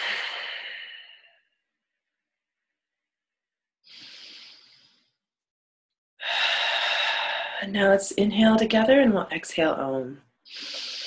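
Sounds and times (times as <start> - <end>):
woman breathing deeply: 0.0 - 1.5, 3.8 - 5.3, 6.2 - 7.6, 10.4 - 11.0.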